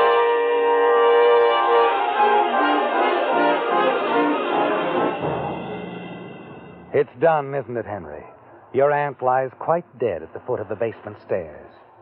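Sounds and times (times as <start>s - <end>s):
dramatic orchestral brass sting: 0.0s - 7.2s.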